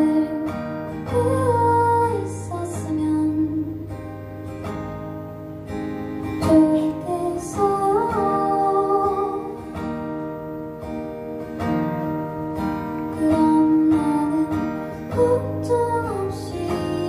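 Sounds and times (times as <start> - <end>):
woman singing: 0.0 - 4.1, 6.4 - 10.1, 13.0 - 17.0
strummed acoustic guitar: 0.0 - 17.0.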